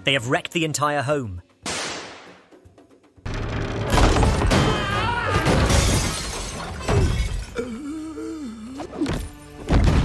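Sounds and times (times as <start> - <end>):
glass shattering: 3.9 - 7.6.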